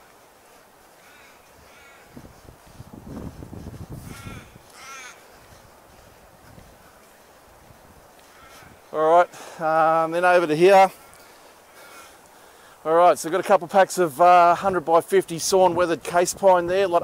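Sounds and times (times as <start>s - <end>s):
crows cawing: 1.0s - 2.3s, 4.0s - 6.2s, 8.2s - 9.6s, 11.0s - 12.7s.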